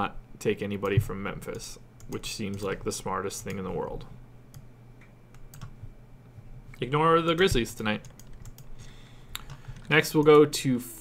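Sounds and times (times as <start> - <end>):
computer keyboard clicks: 5.4 - 5.8, 7.3 - 8.7.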